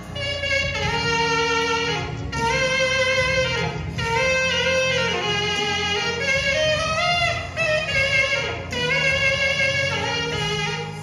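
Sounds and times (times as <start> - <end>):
low keyboard accompaniment: 0.0 - 11.0
saxophone slow melody: 0.0 - 11.0.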